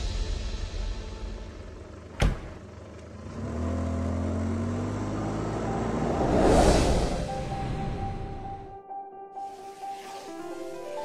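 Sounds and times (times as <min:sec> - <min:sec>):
car engine running: 0:00.5 - 0:06.4.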